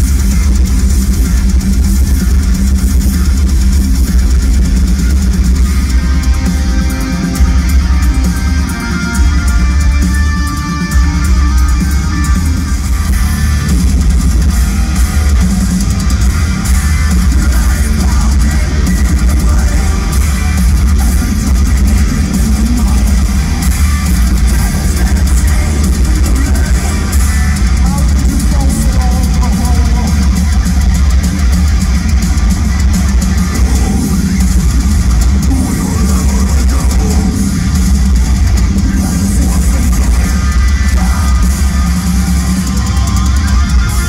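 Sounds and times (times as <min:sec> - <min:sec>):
heavy metal band playing live: 0:00.0 - 0:44.0.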